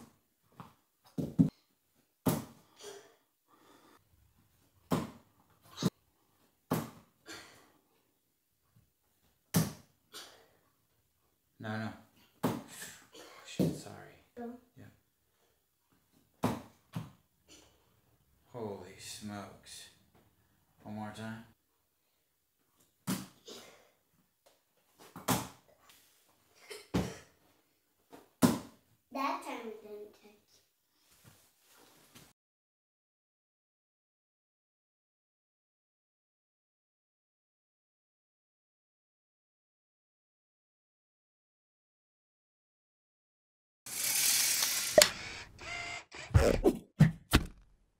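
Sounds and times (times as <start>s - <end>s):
bare feet landing thumps: 2.2s - 2.6s, 4.9s - 5.2s.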